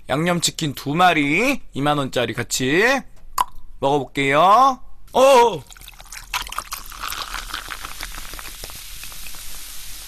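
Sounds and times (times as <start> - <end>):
cola pouring over ice: 5.6 - 10.0
crackling fizz: 5.6 - 10.0.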